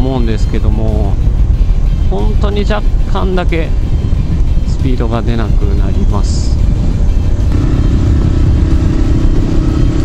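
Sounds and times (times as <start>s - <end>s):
wind rumble on microphone: 0.0s - 10.0s
motorcycle engine cruising: 1.1s - 10.0s.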